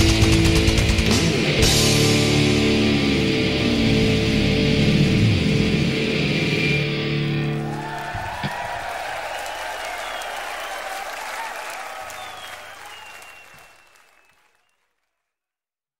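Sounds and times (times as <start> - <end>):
distorted guitar chord: 0.0 - 7.7
audience applause and cheering: 5.3 - 14.9.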